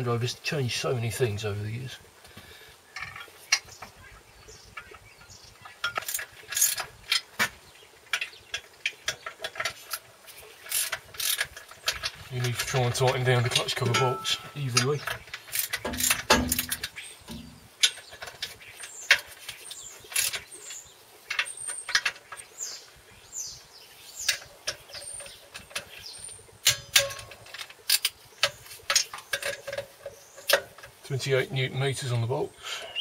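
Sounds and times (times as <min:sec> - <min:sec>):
metal tools tapping and clinking: 0:04.8 - 0:07.2, 0:10.6 - 0:19.3, 0:24.2 - 0:31.0.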